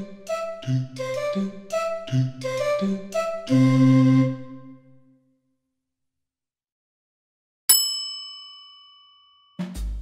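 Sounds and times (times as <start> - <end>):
bell-like ding: 7.7 - 9.8.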